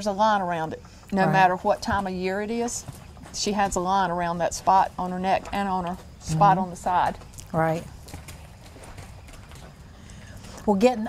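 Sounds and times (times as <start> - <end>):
horse hooves on dirt: 0.0 - 11.0.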